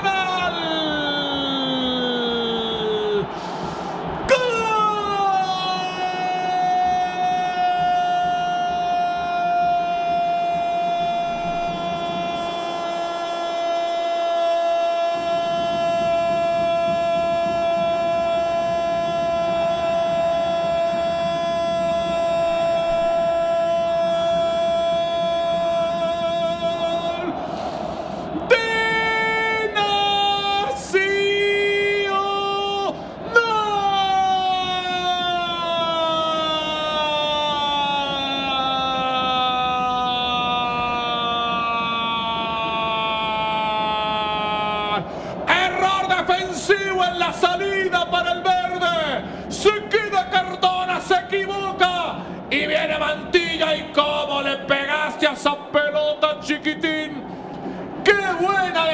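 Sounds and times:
commentator shouting goal: 0.0 - 3.3, 4.2 - 27.4, 28.4 - 41.6, 42.3 - 57.2, 58.0 - 58.9.

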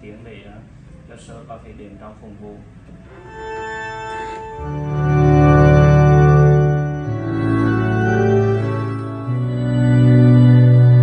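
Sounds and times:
electronic organ playing chords: 3.1 - 11.0
deep bass note: 3.2 - 11.0.

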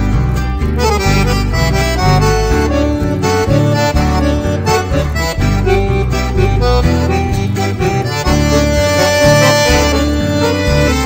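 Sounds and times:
accordion melody: 0.0 - 11.0
stepping bass accompaniment: 0.0 - 11.0.

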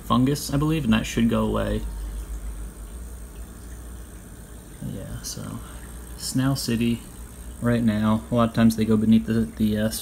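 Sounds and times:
aquarium air pump humming: 0.0 - 10.0.

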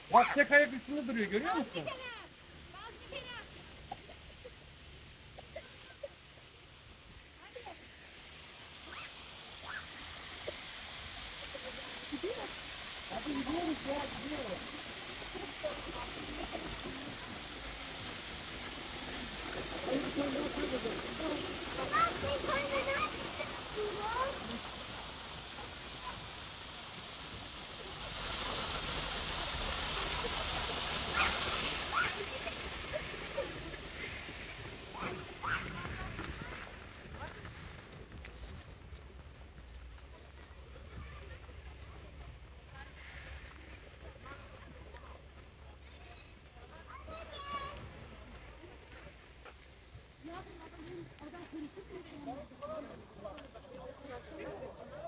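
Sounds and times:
water splashing down rocks: 0.0 - 55.0.

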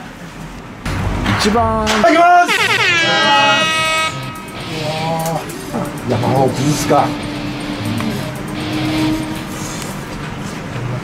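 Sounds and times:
brassy horn sound effect: 0.9 - 10.1.

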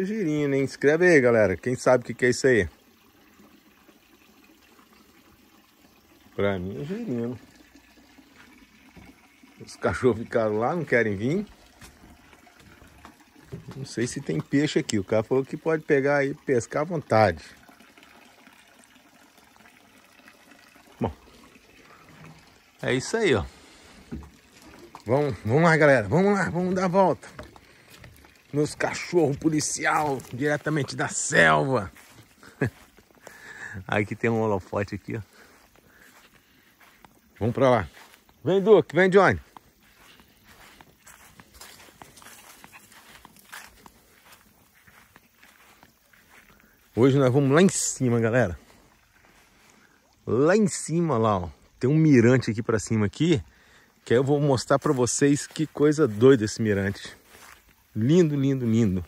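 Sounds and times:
faint trickle of water: 0.0 - 59.0
footsteps on grass: 10.8 - 13.8, 23.4 - 49.9, 54.6 - 59.0.

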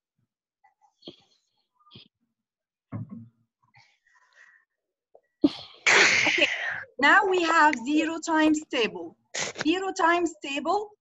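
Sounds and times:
person sneezing: 5.5 - 6.8, 9.4 - 9.6.

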